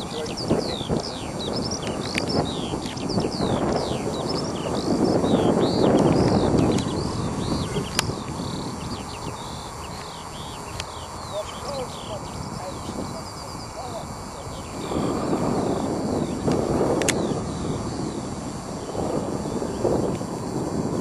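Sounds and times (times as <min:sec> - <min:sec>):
small songbirds chirping: 0:00.0 - 0:21.0
steady rushing noise: 0:00.0 - 0:21.0
sharp click: 0:16.5 - 0:17.3.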